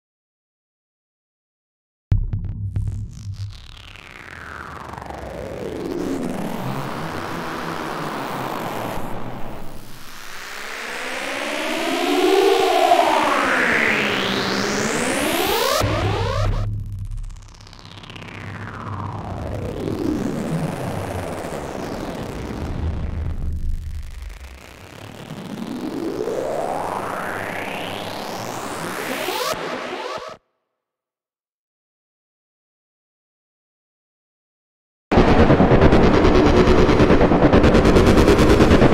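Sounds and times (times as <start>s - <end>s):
buzzy synth tone bending: 2.1s - 10.4s, 14.8s - 19.7s
synthesizer sweeps: 2.1s - 20.6s
low drone: 15.4s - 19.6s, 35.1s - 38.9s.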